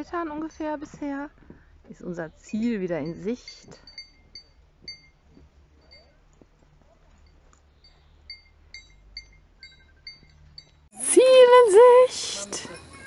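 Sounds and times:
goat bells tinkling: 2.4 - 13.0.

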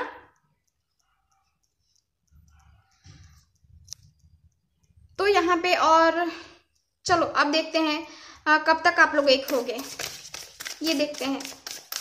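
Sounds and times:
handling cards on cloth: 9.4 - 12.0.

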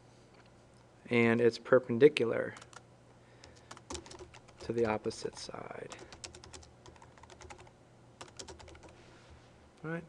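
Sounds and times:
typing on computer keyboard: 2.6 - 2.8, 3.4 - 9.0.

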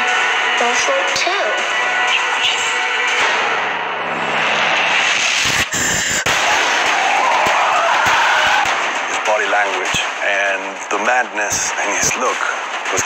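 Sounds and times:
dense noisy swell: 2.2 - 13.0
sharp cracks: 3.0 - 13.0
sudden hit: 3.1 - 13.0.

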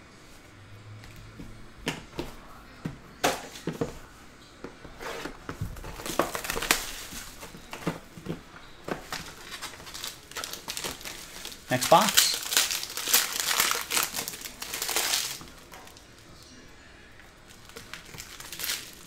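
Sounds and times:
plastic wrap crinkling: 5.8 - 16.2, 17.4 - 19.0.

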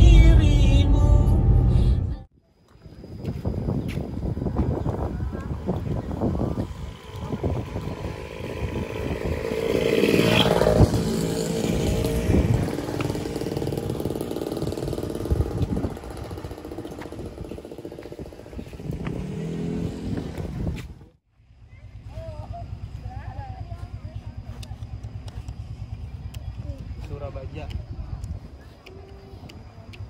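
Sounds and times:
wind on microphone: 2.9 - 21.1, 25.7 - 30.0
low outdoor rumble: 3.0 - 30.0
motorcycle engine passing by: 4.1 - 27.6.

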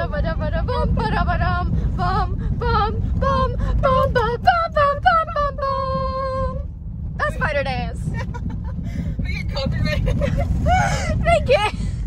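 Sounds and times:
car rumbling on dirt road: 0.0 - 12.0.

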